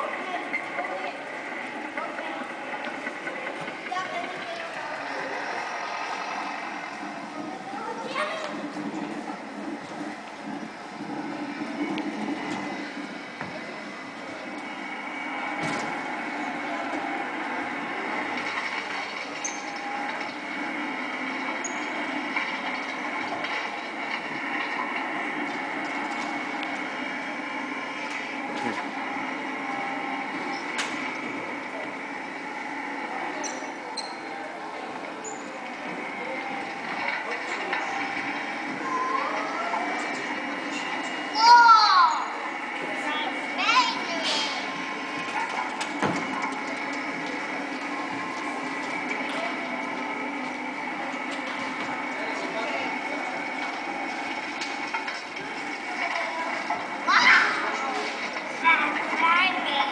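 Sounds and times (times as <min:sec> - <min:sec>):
steady hum: 0:00.0 - 0:59.9.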